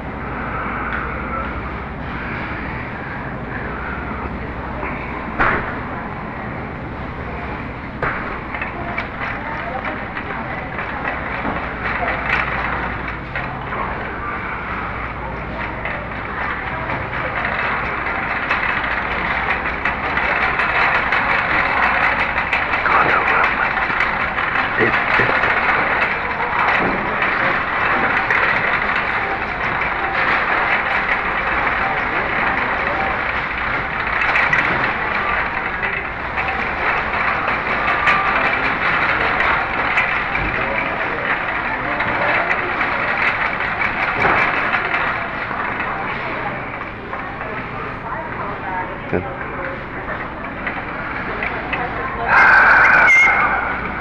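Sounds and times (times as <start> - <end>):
indistinct voices: 0.0 - 54.0
steady rattling clattering: 0.0 - 54.0.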